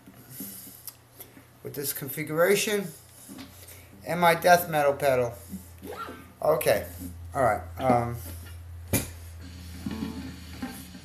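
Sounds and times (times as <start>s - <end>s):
guitar amp hum and hiss: 3.3s - 11.0s.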